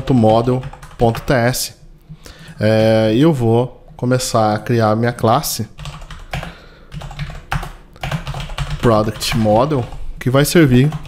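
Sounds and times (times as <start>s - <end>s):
computer keyboard typing: 0.0s - 1.5s, 5.8s - 10.0s, 10.7s - 11.0s.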